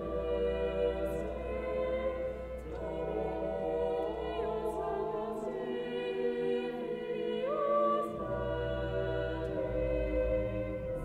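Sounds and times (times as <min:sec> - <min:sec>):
choir singing: 0:00.0 - 0:11.0.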